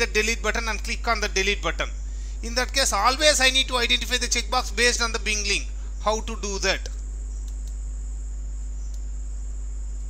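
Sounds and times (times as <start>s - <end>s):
high-pitched whine: 0.0s - 10.0s
low electrical hum: 0.0s - 10.0s.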